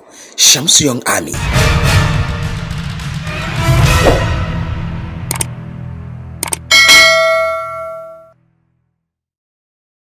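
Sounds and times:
bright bell ding: 6.7s - 8.4s.

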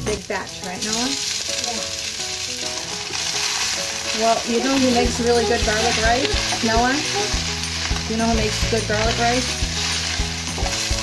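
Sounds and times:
garlic sizzling in hot oil: 0.0s - 11.0s.

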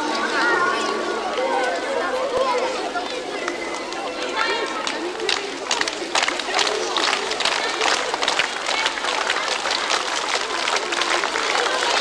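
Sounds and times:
voices: 0.0s - 12.0s
crowd clapping: 3.0s - 12.0s.

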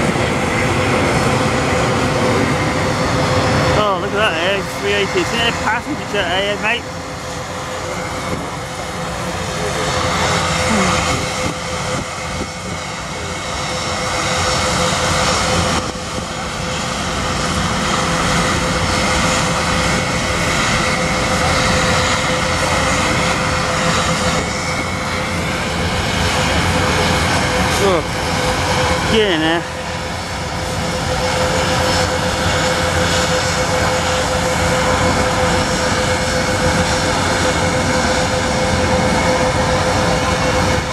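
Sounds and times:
airliner jet roar and whine: 0.0s - 40.9s.

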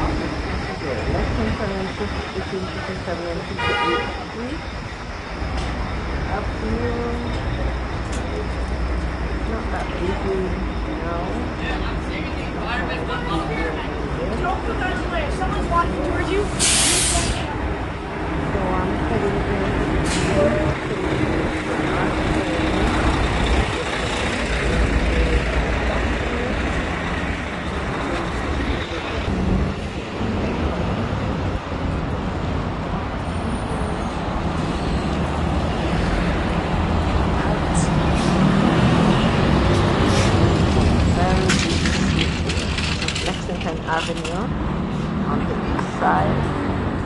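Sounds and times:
cars and bus rumbling: 0.0s - 47.0s.

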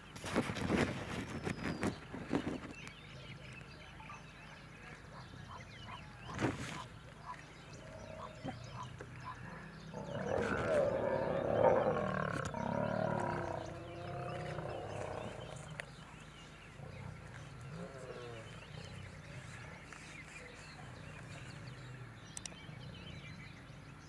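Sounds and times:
lions snarling and growling: 7.8s - 16.0s.

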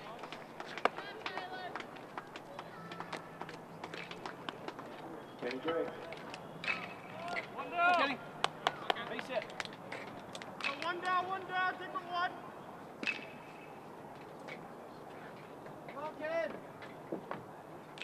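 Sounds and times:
distant shouting voices: 0.0s - 9.3s, 10.6s - 14.0s.

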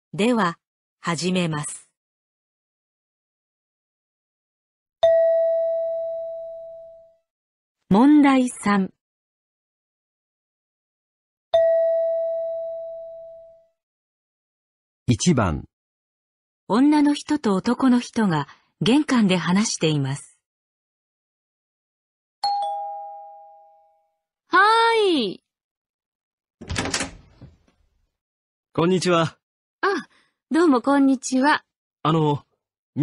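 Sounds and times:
bell-like chime: 22.4s - 24.1s
front door opening clicks: 26.6s - 27.7s.

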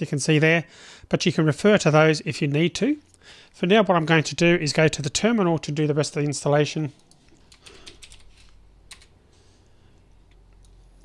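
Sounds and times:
computer keyboard typing: 7.0s - 9.2s.

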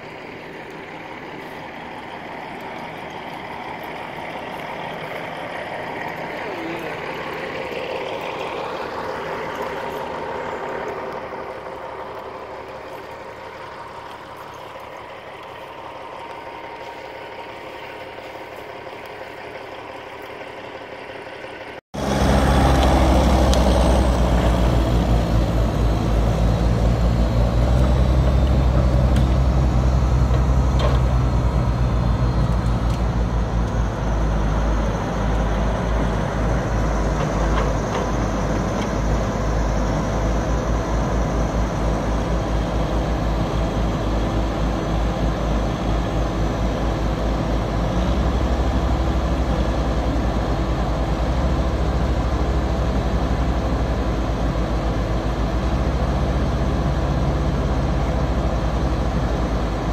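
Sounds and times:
heavy diesel engines running: 0.0s - 59.9s.

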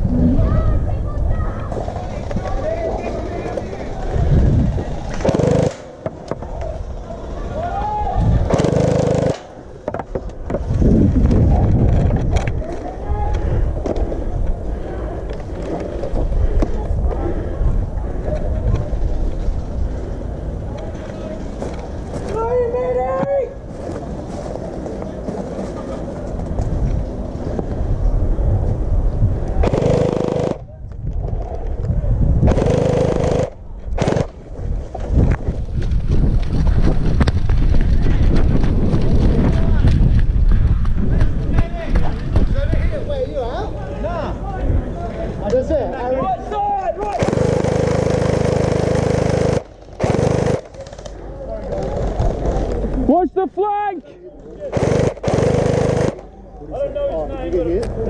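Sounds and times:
wind on microphone: 0.0s - 5.3s, 6.4s - 8.6s, 10.2s - 21.0s, 26.3s - 43.3s.

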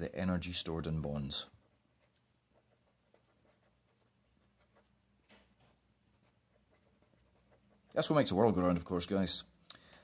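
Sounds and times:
marker writing on paper: 1.4s - 8.0s.

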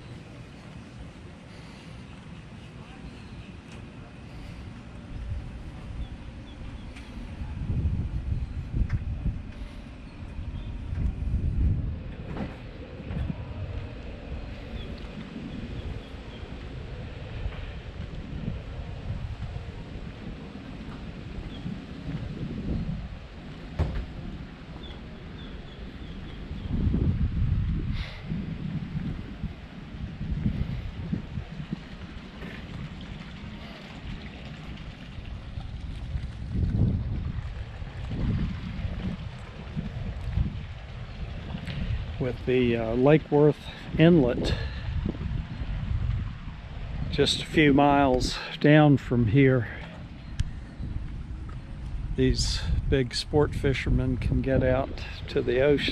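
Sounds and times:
wind buffeting microphone: 0.0s - 55.9s.

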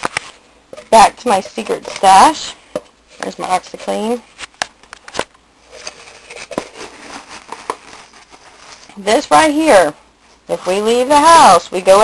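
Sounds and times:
plastic tub scraping and rustling: 0.0s - 2.5s, 5.6s - 9.0s.

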